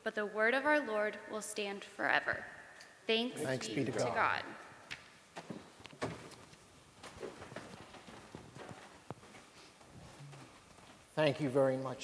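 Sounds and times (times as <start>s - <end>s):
faint footsteps: 4.2s - 11.2s.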